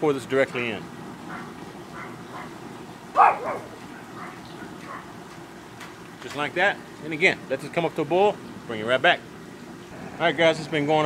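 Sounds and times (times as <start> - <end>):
dog barking: 1.3 - 5.1.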